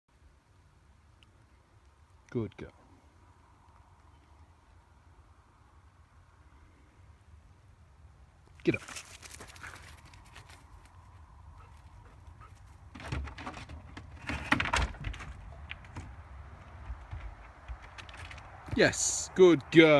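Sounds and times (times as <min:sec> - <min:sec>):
dog paws knocking on wood: 0:12.9 - 0:18.8.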